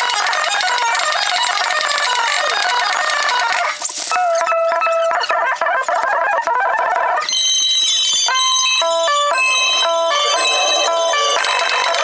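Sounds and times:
rapid high-pitched tones: 0.0 - 6.3, 7.0 - 12.0.

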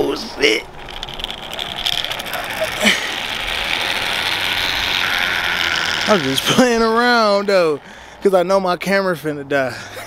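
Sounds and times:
zip line pulleys whirring: 0.0 - 10.0.

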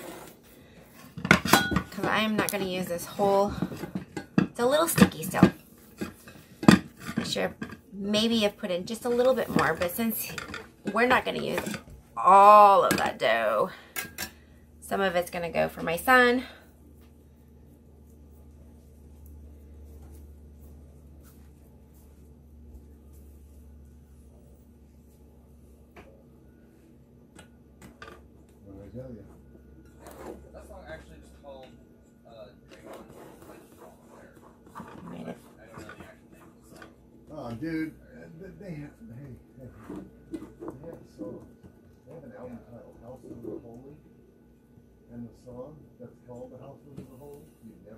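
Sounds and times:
low steady hum: 0.0 - 47.9.

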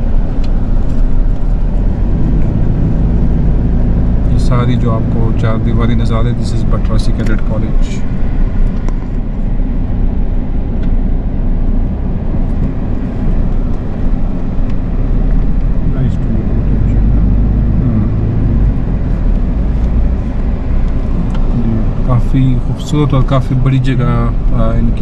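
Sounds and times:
engine and road rumble in cabin: 0.0 - 25.0.

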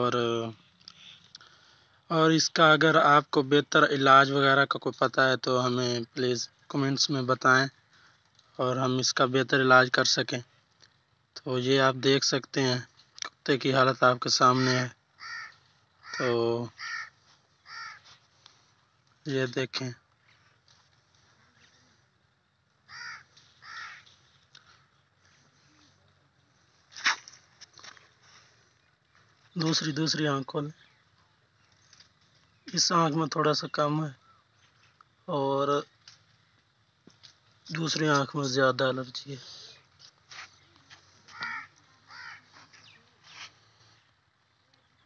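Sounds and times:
crow cawing: 14.4 - 18.4, 22.8 - 24.9, 41.2 - 42.8.

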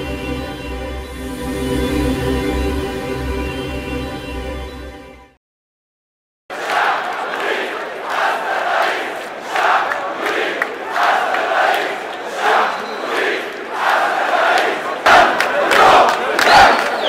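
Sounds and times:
crowd chanting slogans: 6.5 - 17.0.

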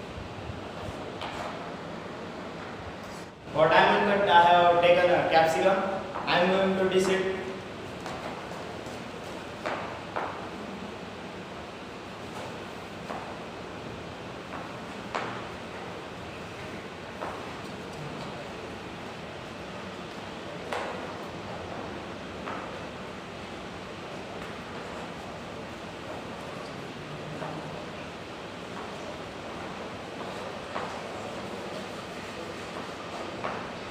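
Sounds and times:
steady background hiss: 0.0 - 33.9.

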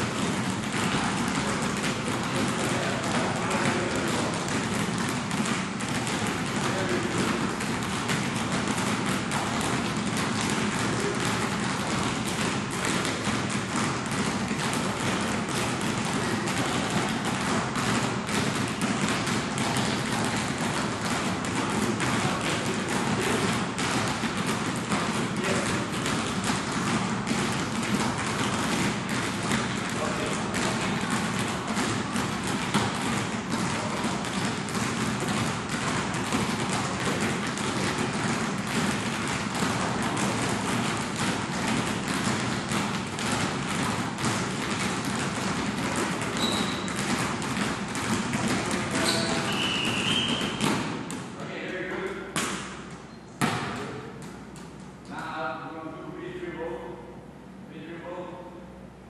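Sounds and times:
basketballs bouncing on court: 0.0 - 55.4.

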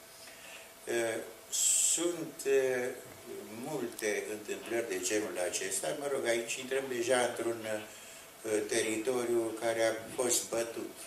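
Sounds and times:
loud s hiss: 0.0 - 3.8
man's voice over microphone: 0.9 - 11.0.

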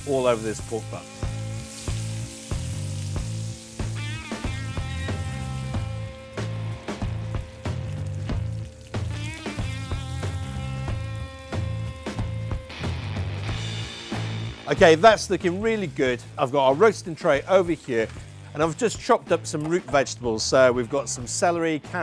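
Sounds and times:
meat sizzling in a frying pan: 0.0 - 14.6, 15.8 - 19.0
background music with bass line: 0.0 - 22.0.

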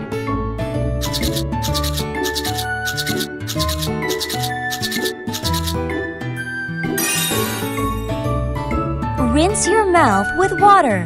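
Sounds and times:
bright children's music: 0.8 - 11.0
toothbrush scrubbing: 1.0 - 5.8.

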